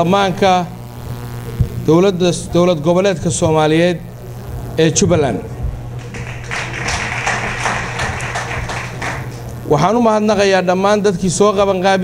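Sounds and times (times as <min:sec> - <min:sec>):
low hum: 0:00.0 - 0:09.9
audience applause: 0:06.0 - 0:09.4.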